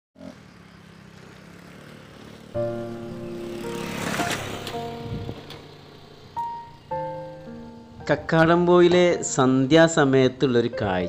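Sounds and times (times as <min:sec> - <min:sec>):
vehicle engine humming: 0:00.2 - 0:11.0.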